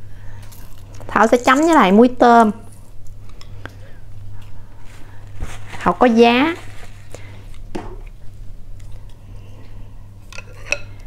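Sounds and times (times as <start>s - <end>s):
low steady hum: 0.0s - 11.0s
utensils clinking against glass bowl: 10.4s - 11.0s.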